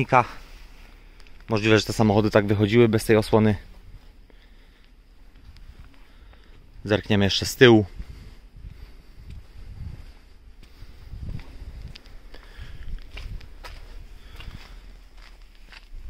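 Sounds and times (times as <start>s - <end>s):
low steady rumble: 0.0s - 16.0s
footsteps on asphalt: 8.6s - 16.0s.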